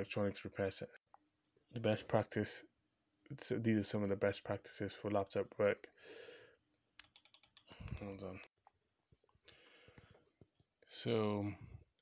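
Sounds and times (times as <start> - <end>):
computer keyboard keystrokes: 7.0 - 8.0.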